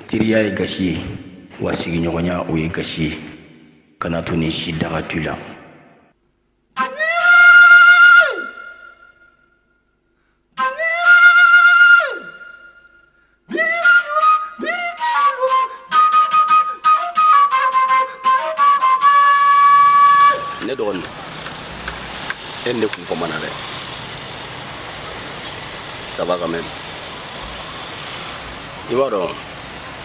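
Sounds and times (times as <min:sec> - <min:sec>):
flute-like note sliding up and down: 0:12.0 - 0:21.1
insects chirring: 0:19.2 - 0:30.0.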